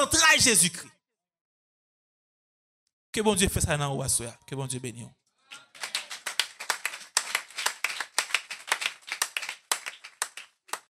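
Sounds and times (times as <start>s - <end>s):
group applauding: 5.5s - 10.9s.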